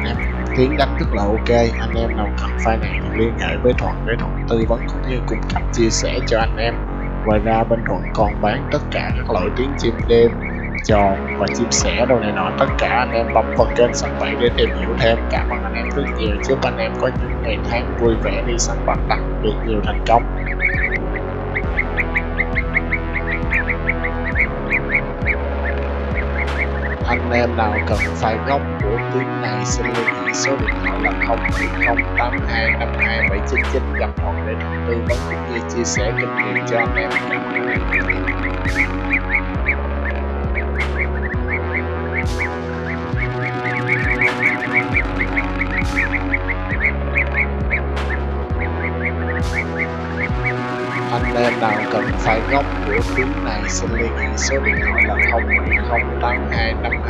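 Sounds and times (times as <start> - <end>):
background music: 0.0 - 57.0
birds chirping rapidly: 1.8 - 57.0.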